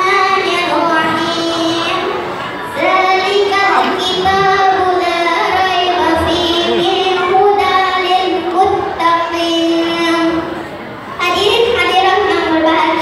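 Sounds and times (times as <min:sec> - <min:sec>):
child singing: 0:00.0 - 0:10.5, 0:11.2 - 0:13.0.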